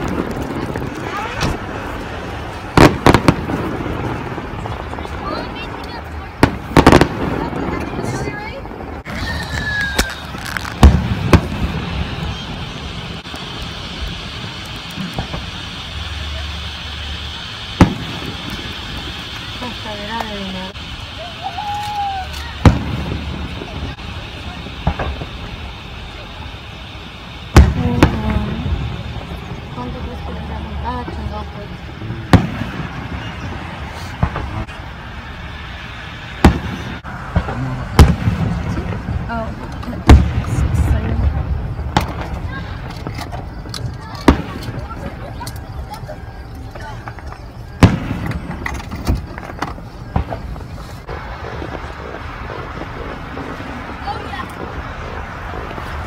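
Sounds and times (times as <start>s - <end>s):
faint indistinct voices: 15.0s - 34.9s, 36.7s - 56.0s.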